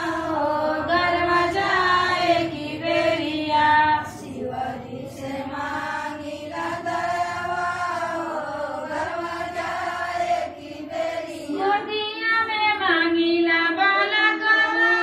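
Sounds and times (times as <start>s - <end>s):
women singing in chorus: 0.0s - 15.0s.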